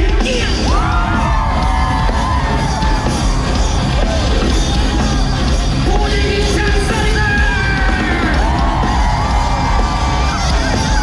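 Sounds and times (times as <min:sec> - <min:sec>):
concert music with heavy bass: 0:00.0 - 0:11.0
crowd yelling and cheering: 0:00.0 - 0:11.0.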